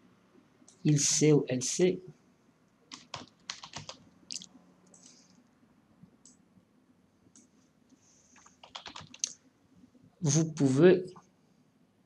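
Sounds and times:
keyboard keystrokes: 0:02.9 - 0:04.4, 0:08.4 - 0:09.3.

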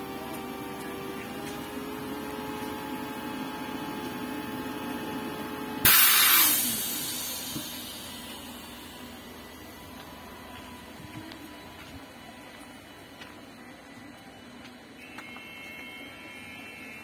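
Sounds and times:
air compressor humming: 0:00.0 - 0:14.2
compressed air hiss: 0:05.8 - 0:08.5.

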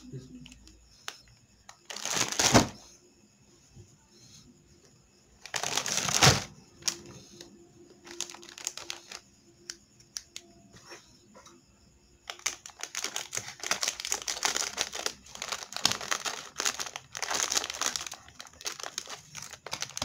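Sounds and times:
plastic snack packet crinkling: 0:00.6 - 0:02.8, 0:05.4 - 0:07.4, 0:08.0 - 0:09.2, 0:12.2 - 0:20.0.

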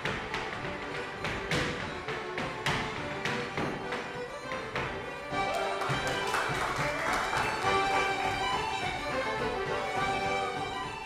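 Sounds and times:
loud foot stamps: 0:00.0 - 0:10.9
dance shoes tapping on floor: 0:00.0 - 0:11.0
instrumental music: 0:00.0 - 0:11.0.

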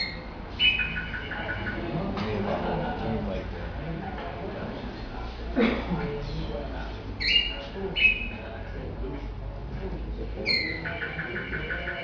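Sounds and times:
canary singing: 0:00.0 - 0:01.9, 0:07.2 - 0:08.5, 0:10.4 - 0:12.0.

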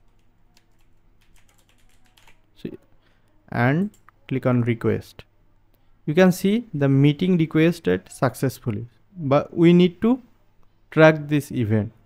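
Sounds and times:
computer keyboard typing: 0:00.0 - 0:02.5.

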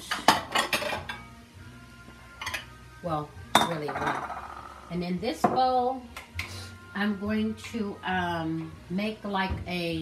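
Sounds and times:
glass bowls clinking: 0:03.6 - 0:04.8.

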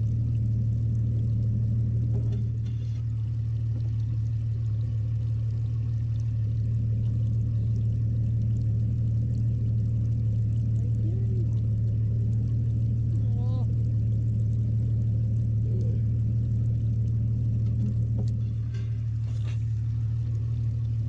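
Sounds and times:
boat motor humming: 0:00.0 - 0:21.0.

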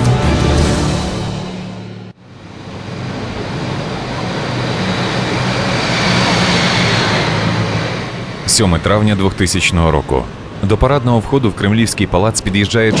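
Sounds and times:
car engine and tyre noise: 0:01.1 - 0:13.0.

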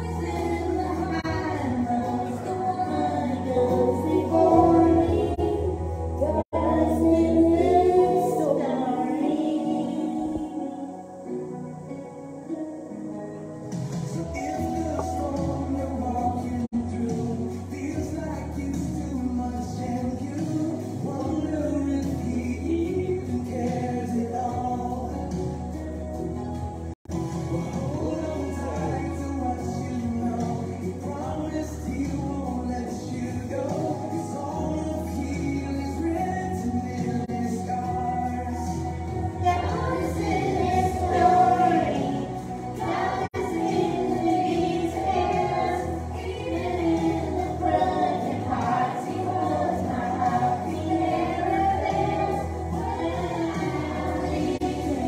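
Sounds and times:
women singing gospel song: 0:00.0 - 0:11.2, 0:14.1 - 0:18.0, 0:27.4 - 0:55.0
musical backing: 0:00.0 - 0:55.0.

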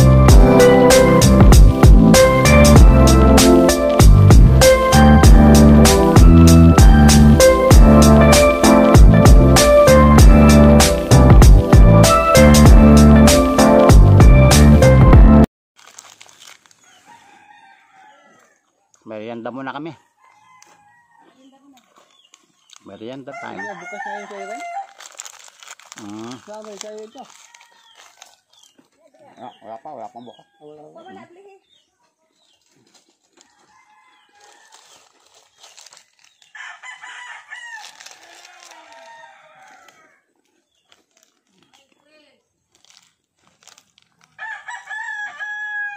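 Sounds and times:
faint rooster crowing: 0:16.8 - 0:18.8, 0:19.9 - 0:21.8, 0:23.2 - 0:25.0, 0:27.2 - 0:28.4, 0:33.4 - 0:35.2, 0:36.6 - 0:40.3, 0:44.4 - 0:45.9.

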